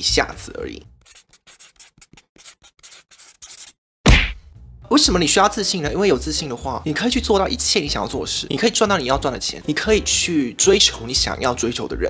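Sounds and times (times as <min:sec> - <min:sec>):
marker strokes on paper: 0:01.0 - 0:03.8
loud hit with deep boom: 0:04.1 - 0:04.6.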